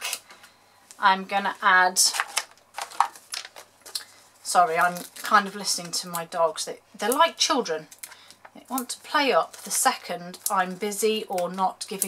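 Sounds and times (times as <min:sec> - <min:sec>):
soft paper clicks and rustles: 0:02.1 - 0:04.2.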